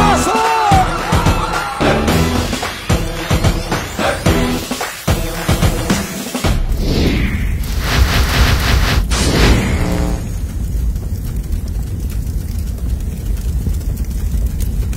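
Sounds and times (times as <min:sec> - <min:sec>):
music: 0:00.0 - 0:08.8
whooshing sweeps: 0:06.7 - 0:10.4
fire rumble with faint crackle: 0:06.7 - 0:14.9.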